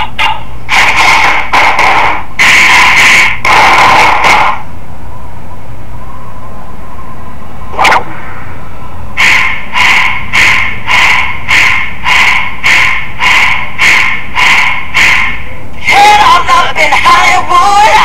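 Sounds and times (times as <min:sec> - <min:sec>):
distorted music with pulsing beat: 0:00.0 - 0:04.6, 0:09.2 - 0:18.0
sharp crack: 0:00.7 - 0:04.6, 0:07.8 - 0:08.2.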